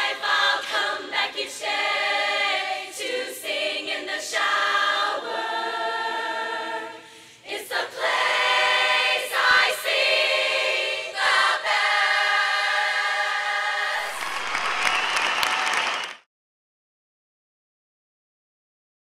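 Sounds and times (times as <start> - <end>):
women's chorus singing a cappella: 0.0 - 14.2.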